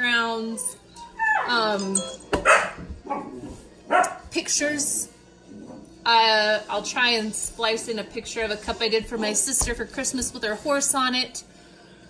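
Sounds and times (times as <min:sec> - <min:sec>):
puppy barking: 0:02.4 - 0:03.3, 0:03.9 - 0:04.2.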